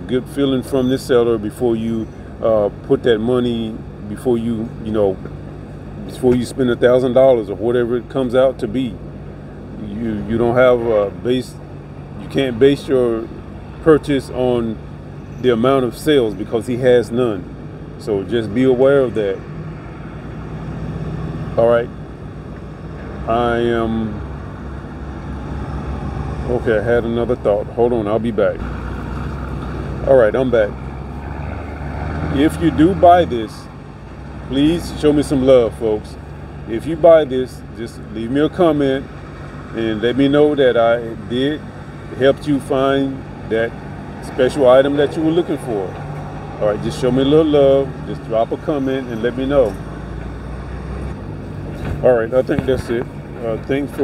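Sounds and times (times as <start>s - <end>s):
low rumble of background noise: 0.0s - 54.0s.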